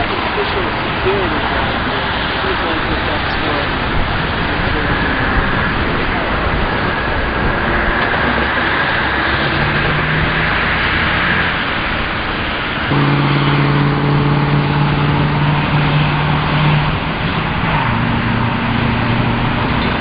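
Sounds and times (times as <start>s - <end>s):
rushing traffic noise: 0.0s - 20.0s
vehicle engine running: 0.0s - 20.0s.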